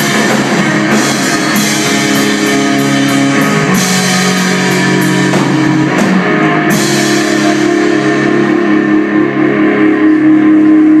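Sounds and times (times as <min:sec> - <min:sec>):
electric guitar ringing chord: 0:00.0 - 0:11.0.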